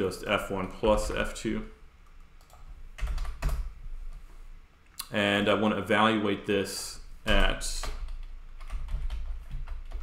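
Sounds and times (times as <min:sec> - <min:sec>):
low steady hum: 0:00.0 - 0:10.0
computer keyboard typing: 0:02.1 - 0:03.7, 0:07.3 - 0:10.0.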